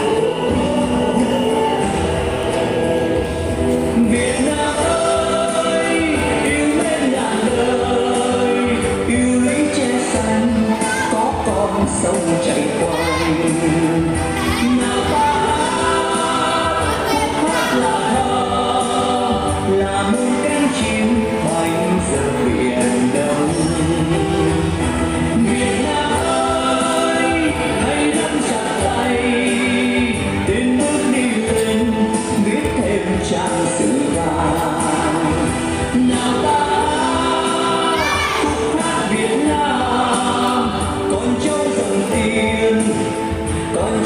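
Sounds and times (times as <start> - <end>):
choral singing with accompaniment: 0.0 - 44.0
recorded song playing loudly: 0.0 - 44.0.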